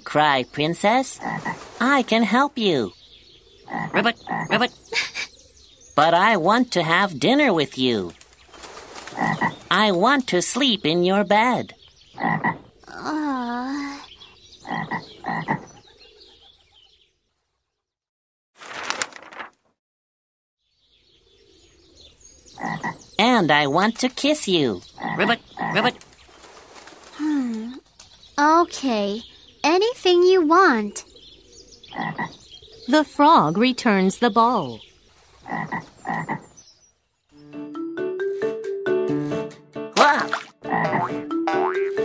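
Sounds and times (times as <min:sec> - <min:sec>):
frog croak: 0:01.2 - 0:01.6, 0:03.6 - 0:04.8, 0:09.1 - 0:09.6, 0:12.2 - 0:13.0, 0:14.6 - 0:15.8, 0:22.6 - 0:23.0, 0:25.0 - 0:26.0, 0:31.9 - 0:32.4, 0:35.4 - 0:36.5, 0:40.6 - 0:41.8
plucked marimba-like tune: 0:40.8 - 0:42.0.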